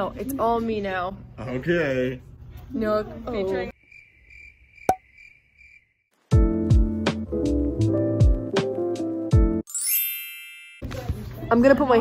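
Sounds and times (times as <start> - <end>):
cricket chirping: 3.7 - 6.2.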